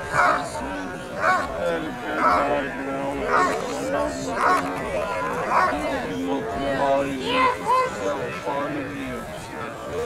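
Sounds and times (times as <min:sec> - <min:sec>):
people talking faintly: 0:00.0 - 0:10.0
dog barking: 0:00.1 - 0:00.5, 0:01.2 - 0:01.5, 0:04.4 - 0:04.6, 0:05.5 - 0:05.8.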